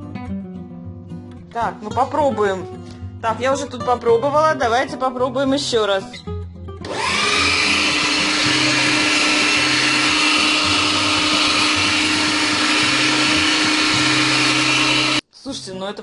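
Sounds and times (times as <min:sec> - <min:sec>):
electric meat grinder motor: 0:06.8 - 0:15.2.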